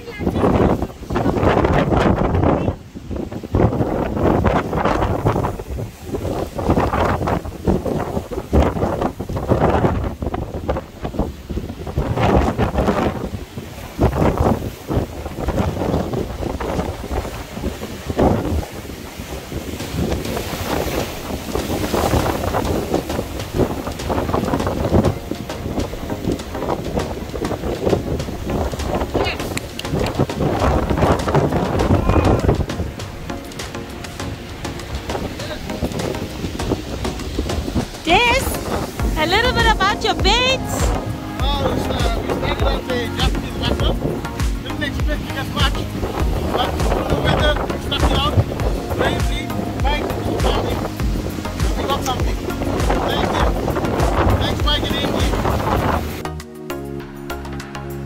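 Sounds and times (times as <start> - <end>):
surf breaking on rocks: 0.0 - 56.2
wind buffeting microphone: 0.0 - 56.3.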